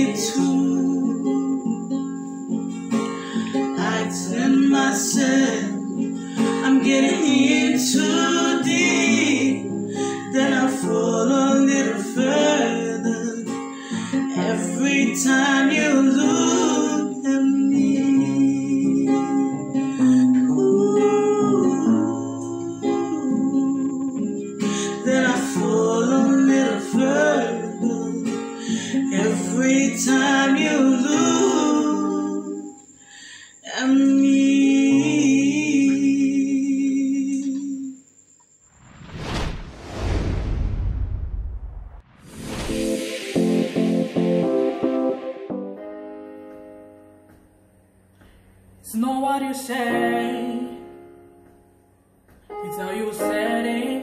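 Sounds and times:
woman singing: 0.0s - 1.7s, 3.7s - 13.6s, 14.2s - 32.8s, 33.6s - 38.0s, 48.8s - 51.0s, 52.5s - 54.0s
strummed acoustic guitar: 0.0s - 32.7s.

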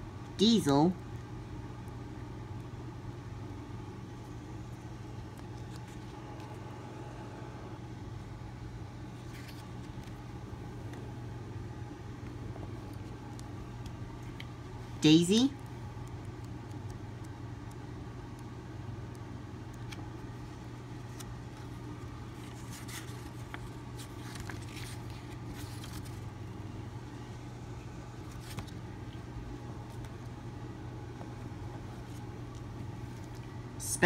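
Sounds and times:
steady low hum: 0.0s - 34.0s
book pages rustling: 5.2s - 6.7s, 9.0s - 11.2s, 12.1s - 14.6s, 19.8s - 26.4s, 28.2s - 30.4s, 31.1s - 33.5s.

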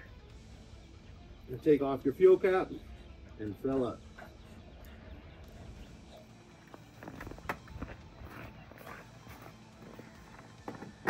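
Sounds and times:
footsteps crunching in snow: 6.6s - 11.0s.

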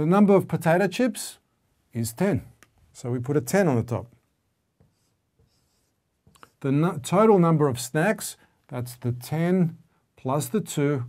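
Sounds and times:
marker pen on whiteboard: 4.7s - 7.2s.

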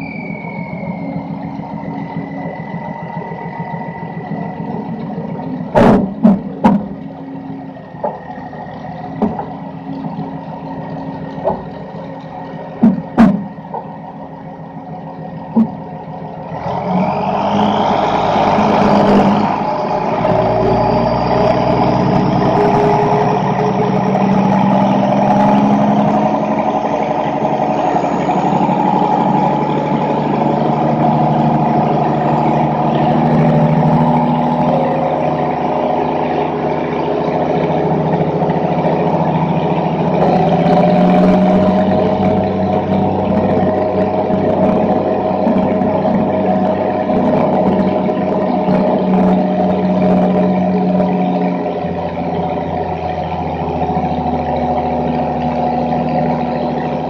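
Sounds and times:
tractor diesel engine revving: 0.0s - 57.0s.

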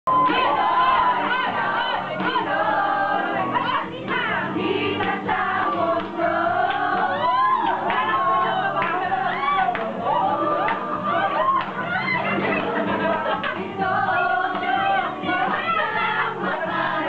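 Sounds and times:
women singing together: 0.1s - 17.0s
high whoops: 7.0s - 8.2s, 9.2s - 12.4s.

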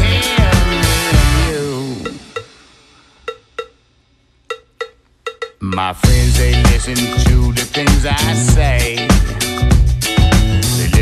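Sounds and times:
pitched percussion hits: 0.0s - 3.9s.

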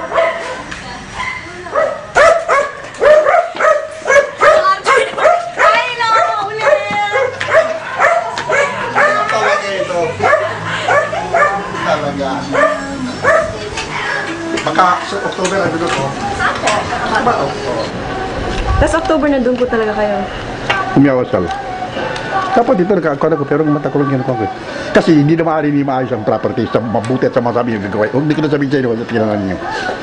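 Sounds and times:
dog barking: 0.0s - 13.6s.

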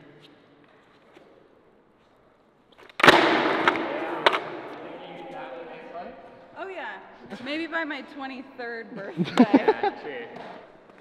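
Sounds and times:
skateboard clattering knocks: 3.0s - 4.6s
skateboard crash on concrete: 3.0s - 4.8s.

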